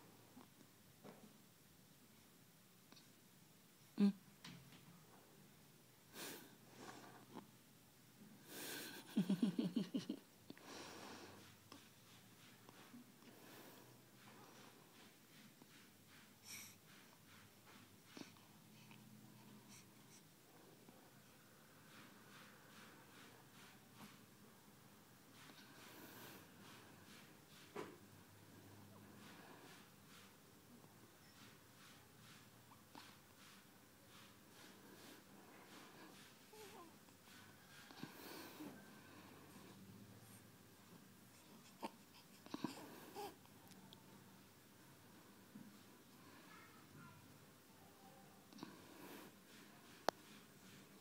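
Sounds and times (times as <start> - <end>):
soft hisses: 0.0 - 51.0.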